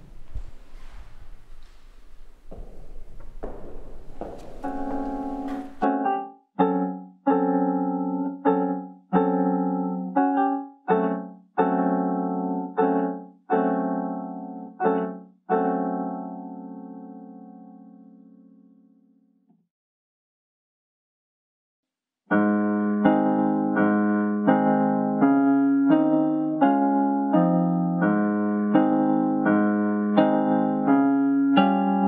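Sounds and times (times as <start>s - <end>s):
piano playing slow chords: 1.6s - 19.2s, 22.3s - 32.0s.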